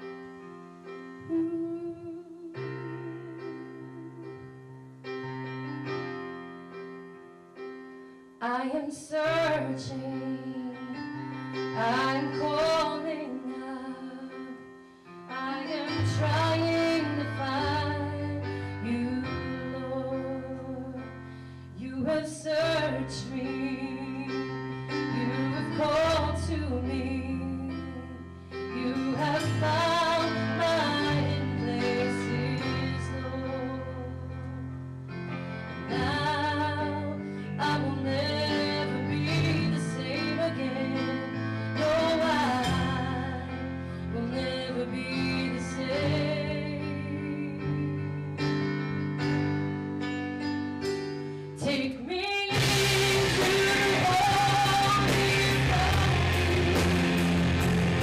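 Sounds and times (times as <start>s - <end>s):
electric keyboard: 0.0s - 58.0s
woman singing: 1.1s - 4.7s, 8.4s - 21.2s, 21.8s - 34.5s, 35.9s - 48.6s, 51.6s - 57.2s
deep bass line: 52.6s - 58.0s.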